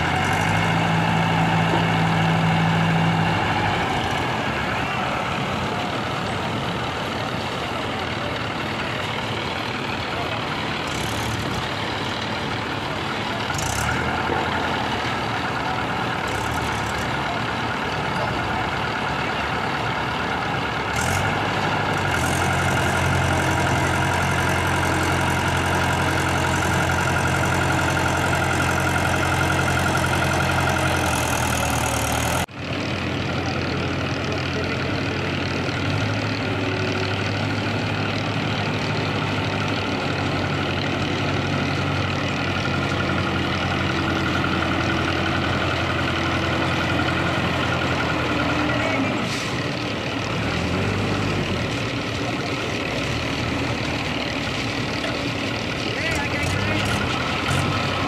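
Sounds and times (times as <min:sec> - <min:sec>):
diesel tractor engine running: 0:00.0 - 0:58.0.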